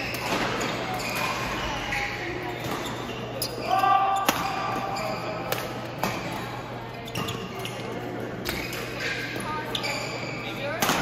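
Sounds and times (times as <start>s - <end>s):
short call or shoe squeak: 8.6s - 10.5s.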